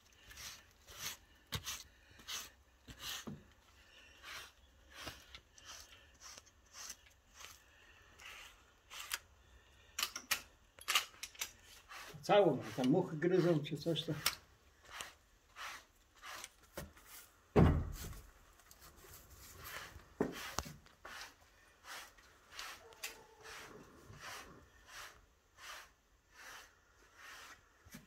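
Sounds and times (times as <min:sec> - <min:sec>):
stick scraping cow hide: 0:00.0 - 0:09.3, 0:11.0 - 0:28.0
heavy thump: 0:17.6 - 0:18.1.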